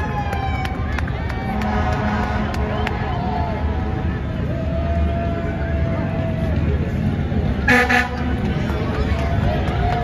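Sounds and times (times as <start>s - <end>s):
fire truck engine rumble: 0.0s - 10.0s
fire truck air horn blast: 7.6s - 8.4s.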